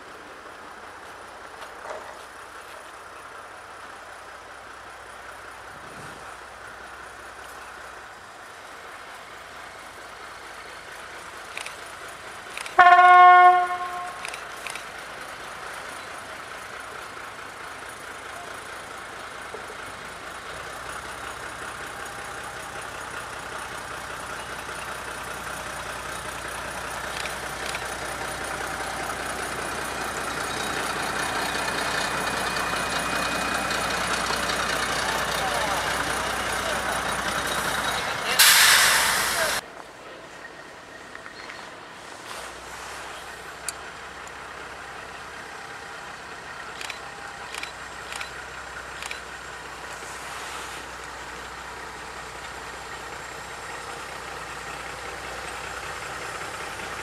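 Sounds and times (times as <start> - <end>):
diesel locomotive engine passing: 0.0 - 57.0
locomotive horn: 12.8 - 14.3
loud hiss: 37.6 - 39.6.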